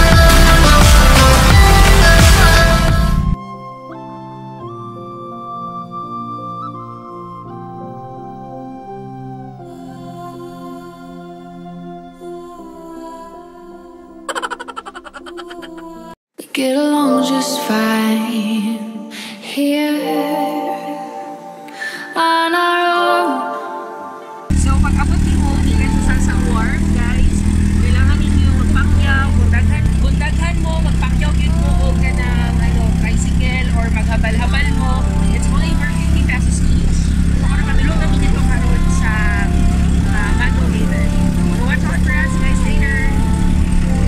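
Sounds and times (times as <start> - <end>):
small motorcycle engine droning: 0.0 - 3.4, 24.5 - 44.0.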